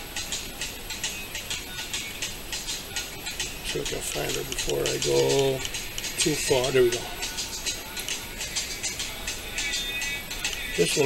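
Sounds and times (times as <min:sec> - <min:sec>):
background music: 0:00.0 - 0:11.0
shaker or hi-hat ticks: 0:00.0 - 0:11.0.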